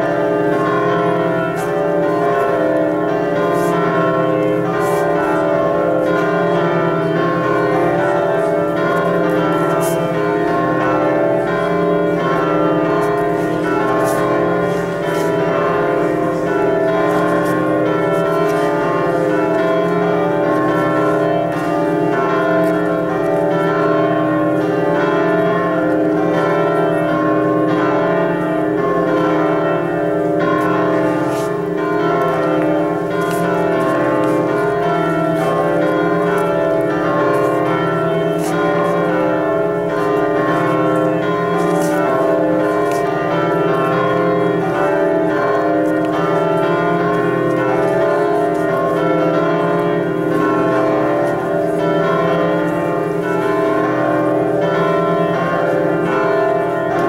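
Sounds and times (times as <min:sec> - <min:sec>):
church music sustained chords: 0:00.0 - 0:57.0.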